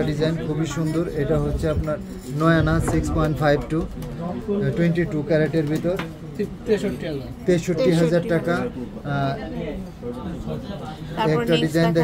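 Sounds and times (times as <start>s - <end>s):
person talking: 11.2s - 12.0s.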